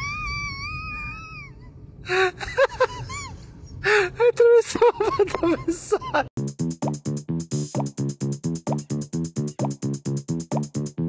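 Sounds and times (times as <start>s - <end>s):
person laughing: 4.2s - 6.3s.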